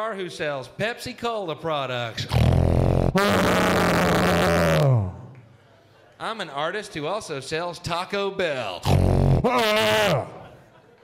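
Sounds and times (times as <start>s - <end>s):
man's raspy vocal noise: 2.2s - 5.3s, 8.8s - 10.5s.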